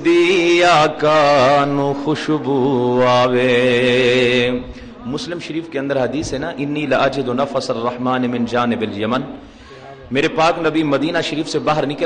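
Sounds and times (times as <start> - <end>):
man chanting with vibrato: 0.0 - 12.0.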